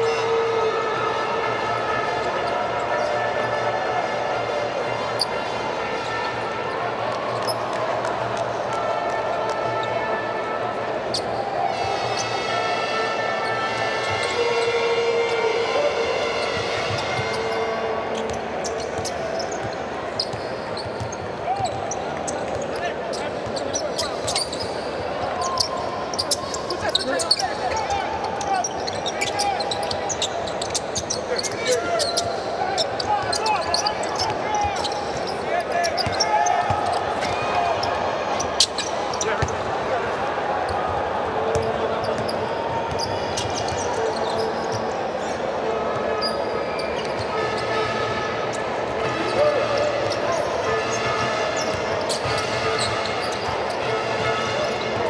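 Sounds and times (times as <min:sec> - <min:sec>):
crowd voices: 0:00.0 - 0:55.0
shoes squeaking on court: 0:16.4 - 0:39.7, 0:41.5 - 0:45.4, 0:46.0 - 0:55.0
basketball bouncing on court: 0:18.2 - 0:22.7, 0:41.5 - 0:44.8.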